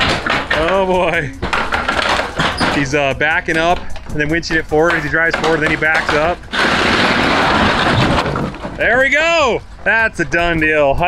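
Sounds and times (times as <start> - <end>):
wood splintering and scraping: 0.0 - 10.8.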